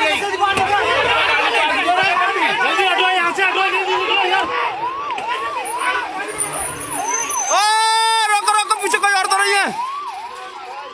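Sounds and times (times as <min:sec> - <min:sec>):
emergency siren sweeping: 0:00.0 - 0:10.9.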